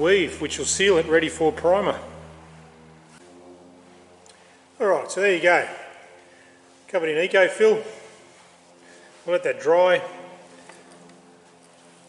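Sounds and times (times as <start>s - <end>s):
mechanical hum: 0.0s - 12.0s.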